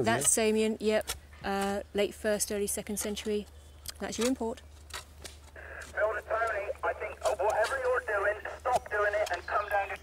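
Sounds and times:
steady low hum: 5.1 - 10.0.

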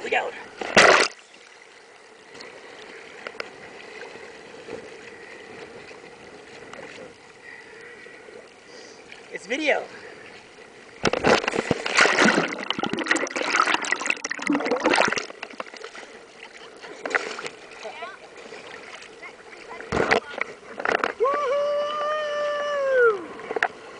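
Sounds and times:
sea water splashing: 0.1 - 23.9
person yelling: 21.2 - 23.3.

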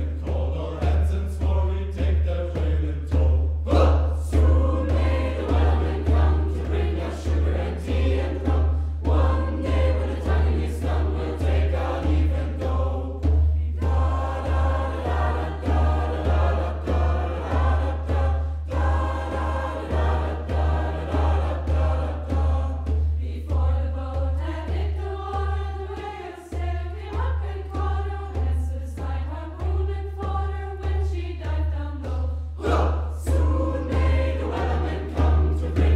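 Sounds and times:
choir singing in parts: 0.0 - 35.9
low pulsing beat: 0.0 - 35.9.

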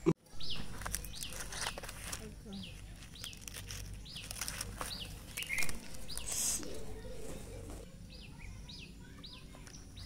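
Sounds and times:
bird chirping: 0.3 - 7.2
leaf peeled crackling and rustling: 0.4 - 7.9.

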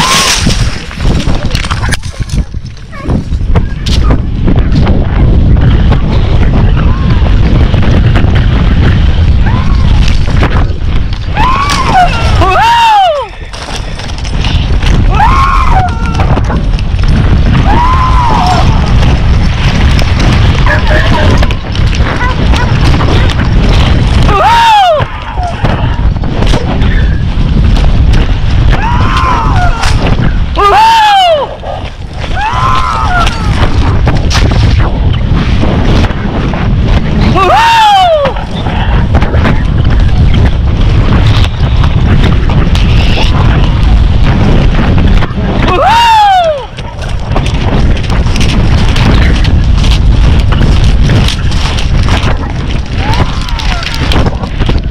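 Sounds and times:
horse hooves thudding: 0.0 - 12.6, 13.2 - 30.6, 31.4 - 37.5, 38.2 - 45.8, 46.5 - 54.9
wind buffeting microphone: 0.0 - 54.9.

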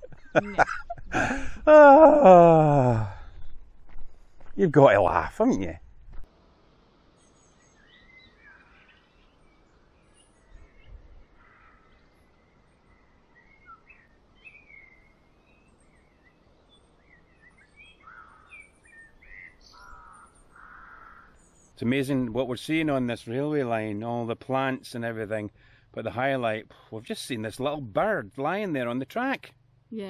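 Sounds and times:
birds chirping: 0.0 - 5.8, 7.1 - 29.0.

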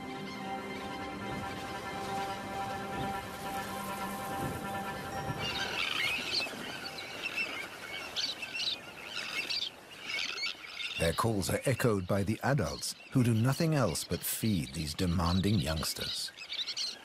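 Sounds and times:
background music long chord: 0.0 - 7.2.

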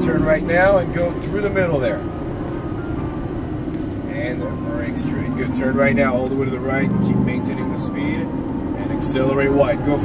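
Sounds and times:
car engine drone from inside: 0.0 - 10.0.

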